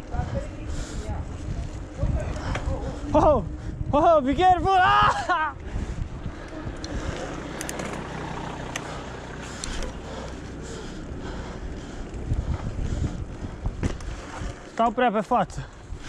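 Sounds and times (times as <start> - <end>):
wind on microphone: 0.0 - 10.2, 11.2 - 14.7
bike tyres on asphalt: 0.0 - 16.0
bike clicks and rattles: 0.8 - 3.9, 5.2 - 16.0.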